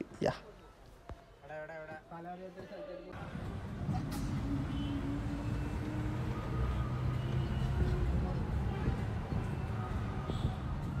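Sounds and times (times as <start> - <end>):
bus engine droning: 3.2 - 10.0.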